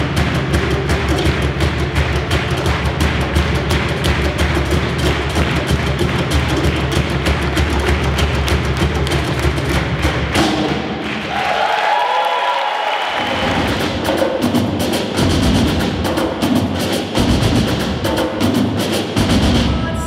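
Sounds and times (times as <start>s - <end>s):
drums and stick strokes: 0.0s - 11.2s, 13.4s - 20.0s.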